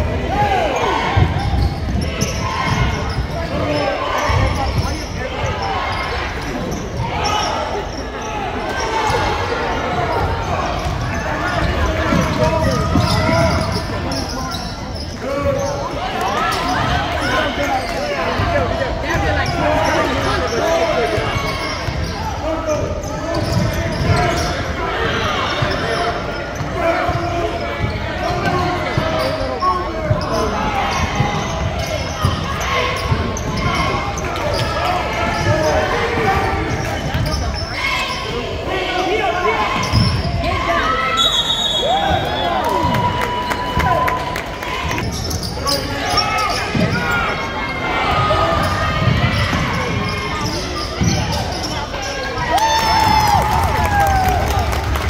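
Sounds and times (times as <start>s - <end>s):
spectator chatter: 0.0s - 55.0s
sneaker squeaks: 0.4s - 53.4s.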